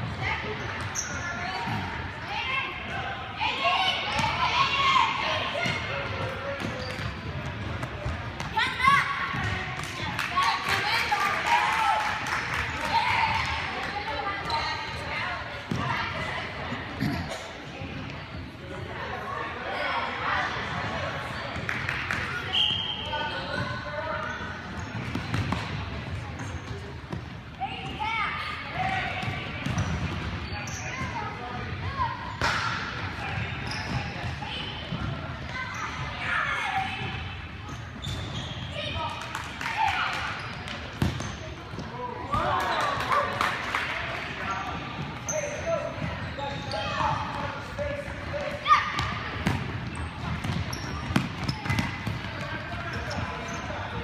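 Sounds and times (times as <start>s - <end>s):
sneakers squeaking: 0.0s - 10.2s, 12.5s - 18.9s, 21.5s - 43.1s, 44.3s - 54.0s.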